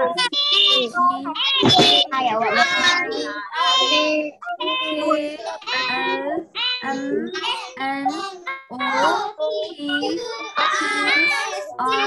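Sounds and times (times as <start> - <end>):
young children singing: 0.0 - 12.0.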